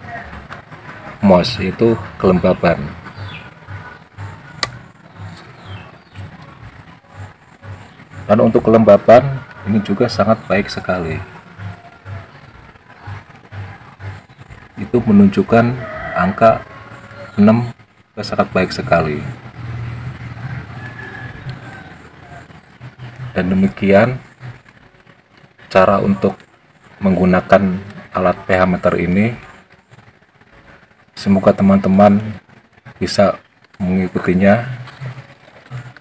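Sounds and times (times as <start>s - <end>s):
soft low pulses: 0.0s - 15.8s
vehicle engine hum: 0.0s - 36.0s
sharp click: 4.6s - 4.8s.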